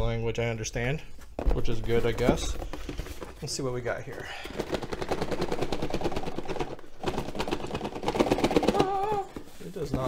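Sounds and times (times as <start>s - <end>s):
packaging crackling and rustling: 1.8s - 10.0s.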